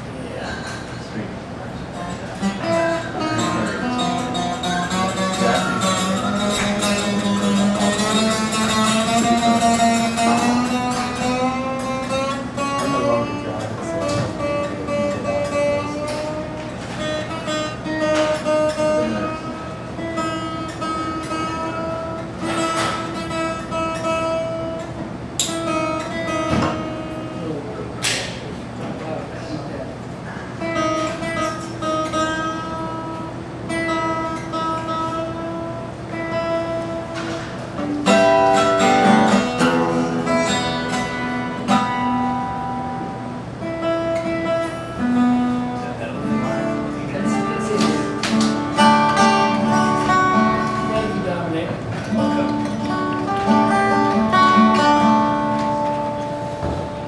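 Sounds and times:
acoustic guitar picking and strumming: 0.0s - 57.0s.

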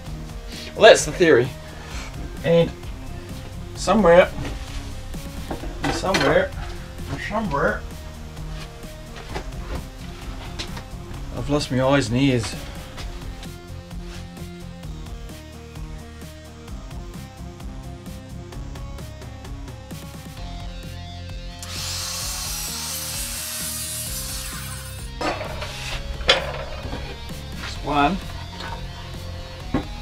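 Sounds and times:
background music: 0.0s - 30.0s
mitre saw cutting wood: 21.6s - 26.0s.

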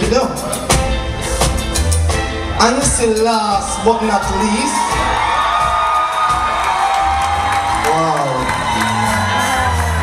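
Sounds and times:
live band music: 0.0s - 10.0s
audience cheering and whooping: 3.4s - 10.0s.

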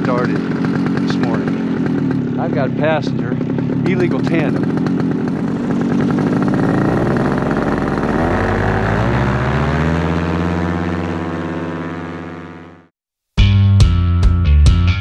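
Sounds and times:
paramotor engine and propeller: 0.0s - 12.9s.

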